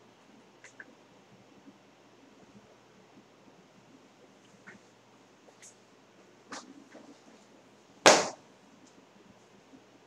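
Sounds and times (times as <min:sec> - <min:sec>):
sudden loud sharp sound: 0:08.1 - 0:08.4.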